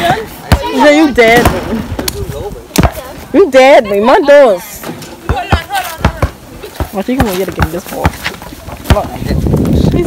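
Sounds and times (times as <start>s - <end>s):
basketball bouncing on court: 5.2s - 8.2s, 8.8s - 9.2s.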